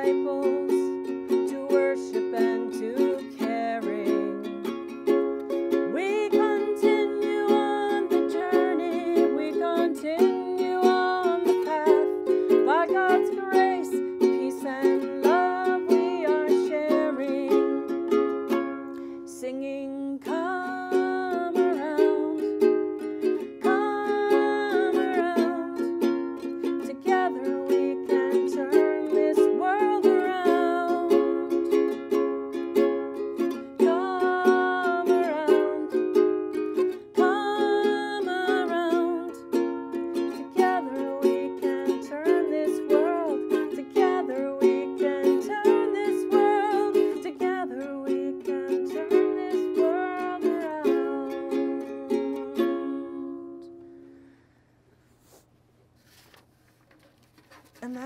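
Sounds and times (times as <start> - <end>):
woman singing slow song: 0.0 - 4.6, 5.9 - 17.9, 19.3 - 22.7, 23.6 - 26.0, 26.7 - 31.6, 33.8 - 36.0, 37.2 - 39.4, 40.3 - 53.8
ukulele strumming: 0.0 - 54.2.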